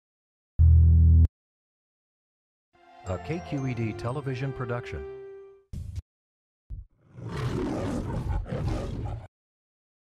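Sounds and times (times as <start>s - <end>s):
lion roaring: 7.1s - 9.3s.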